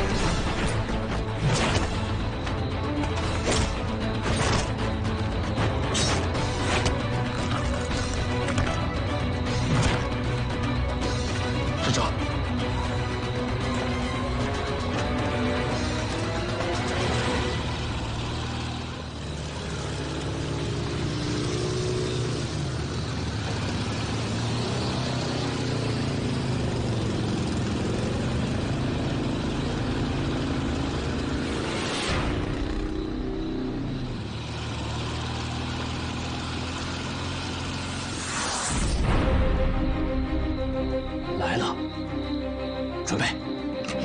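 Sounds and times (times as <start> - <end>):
car engine running: 0.0 - 44.0
motorcycle engine running: 6.8 - 38.2.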